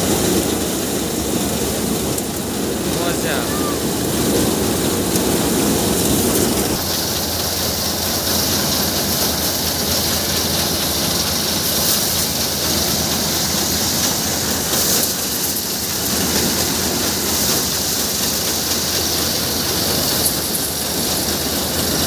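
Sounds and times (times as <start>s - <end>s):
tractor-driven thresher running: 0.0s - 22.0s.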